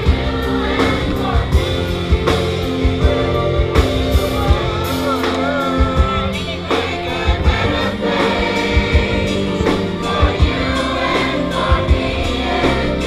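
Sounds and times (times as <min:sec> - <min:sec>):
choir singing: 0:00.0 - 0:13.0
steady beat: 0:00.0 - 0:13.0
string orchestra: 0:00.0 - 0:13.0.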